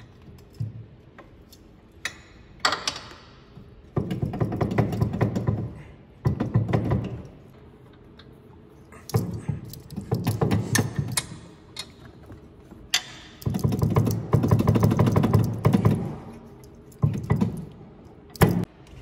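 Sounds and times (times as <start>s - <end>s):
metal parts clattering and knocking: 9.0s - 18.7s.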